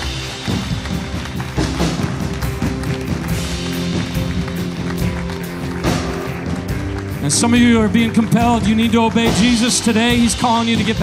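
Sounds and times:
band playing soft music: 0.0s - 11.0s.

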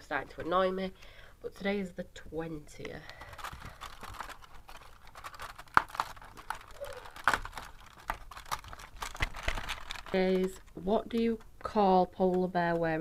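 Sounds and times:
card and foil crinkling: 2.7s - 11.5s
sharp crackles and clicks: 2.8s - 13.0s.

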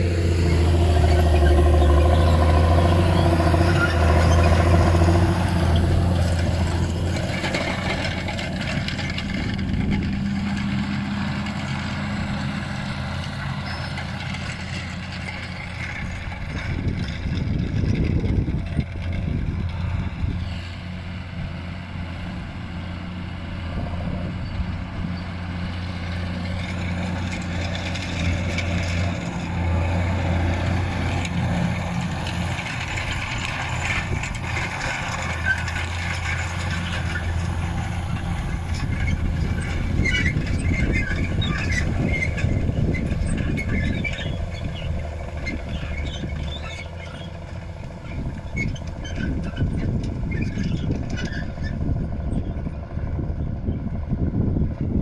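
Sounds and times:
harrow discs rattling and scraping: 0.0s - 21.0s, 24.4s - 52.8s
tractor diesel engine under load: 0.0s - 55.0s.

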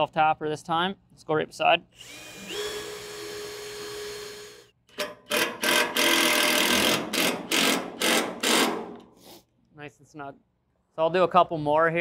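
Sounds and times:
cordless drill whining: 2.0s - 8.7s
screw driven into metal: 2.1s - 9.1s.

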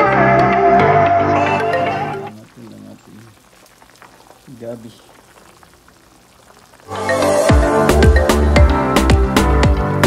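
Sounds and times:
broth bubbling in a wok: 2.3s - 10.0s.

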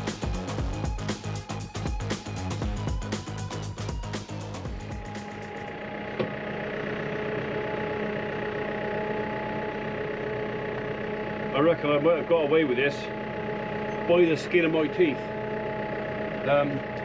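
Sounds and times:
background music with steady beat: 0.0s - 5.8s
tractor engine running: 0.0s - 17.0s.

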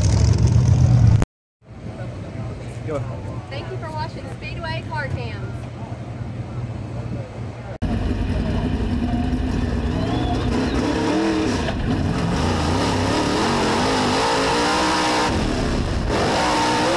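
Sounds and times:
race car engine revving: 7.8s - 16.9s.

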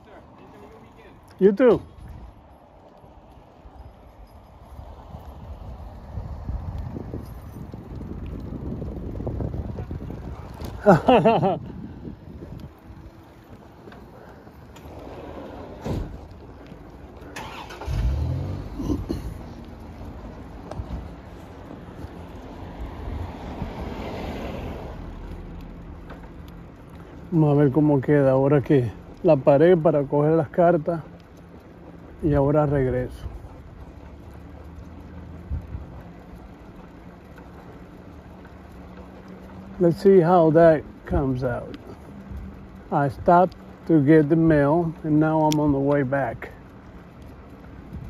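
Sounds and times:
bicycle tyres rumbling on pavement: 0.0s - 48.0s
car driving past: 17.2s - 27.0s.

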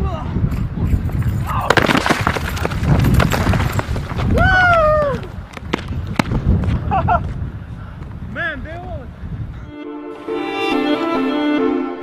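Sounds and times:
wind noise: 0.0s - 9.8s
string music: 9.7s - 12.0s.

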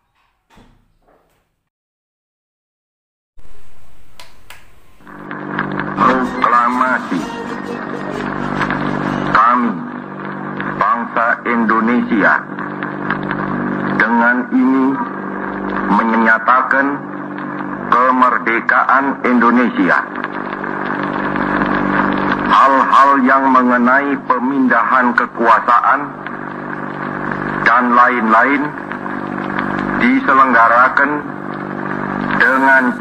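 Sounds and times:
steady hum: 3.4s - 33.0s
radio hiss: 4.7s - 33.0s
low droning tones: 4.8s - 10.8s, 25.2s - 33.0s
muffled radio broadcast: 4.8s - 33.0s.

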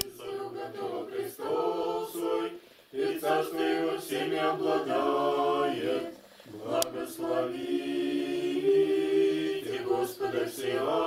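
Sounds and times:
choir chanting long held notes: 0.0s - 11.0s.

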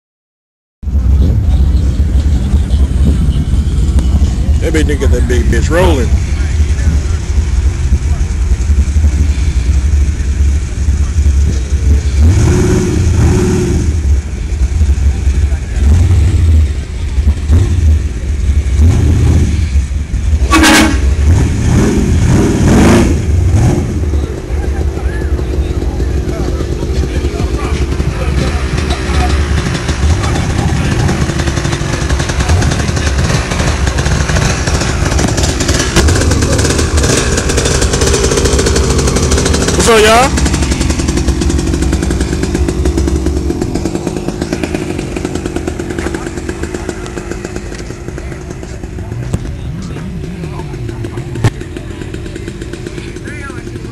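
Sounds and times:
vehicle engines rumbling: 0.8s - 53.9s
people talking: 1.0s - 8.5s, 14.9s - 18.3s, 24.1s - 33.2s, 36.0s - 37.9s, 39.6s - 40.4s, 45.8s - 53.9s.

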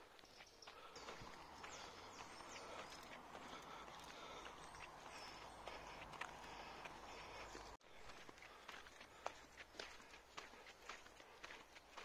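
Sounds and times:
birds chirping: 0.0s - 12.0s
footsteps on tarmac: 0.0s - 12.0s.

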